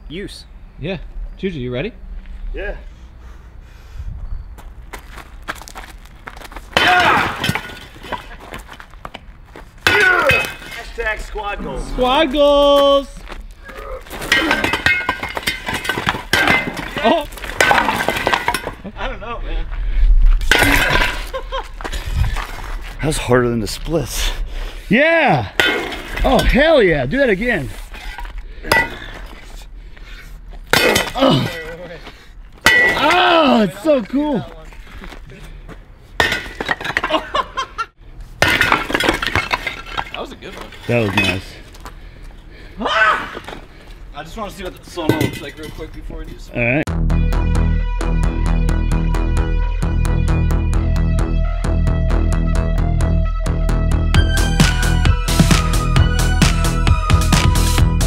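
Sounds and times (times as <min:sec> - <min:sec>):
concrete blocks cracking and tumbling: 0:04.9 - 0:11.4, 0:12.3 - 0:18.9, 0:20.4 - 0:23.1, 0:32.5 - 0:35.2, 0:36.2 - 0:37.4, 0:38.4 - 0:41.9
concrete chunks clinking: 0:05.0 - 0:09.2, 0:09.8 - 0:11.5, 0:12.4 - 0:18.9, 0:20.4 - 0:22.6, 0:25.6 - 0:29.4, 0:32.6 - 0:34.8, 0:36.2 - 0:37.4, 0:38.4 - 0:41.9, 0:44.7 - 0:46.0
hammer smashing concrete blocks: 0:06.7 - 0:08.6, 0:09.8 - 0:11.1, 0:14.1 - 0:18.8, 0:20.5 - 0:21.4, 0:30.7 - 0:31.6, 0:32.6 - 0:33.5, 0:36.2 - 0:37.3, 0:38.4 - 0:41.5.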